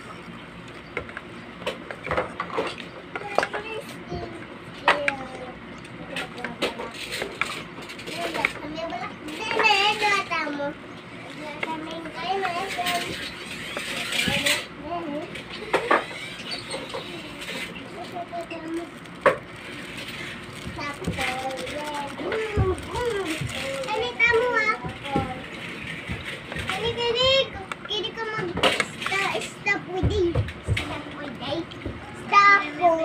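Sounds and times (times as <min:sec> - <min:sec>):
children talking and calling out: 0:03.0 - 0:33.0
child chattering: 0:11.4 - 0:19.2, 0:20.7 - 0:25.4.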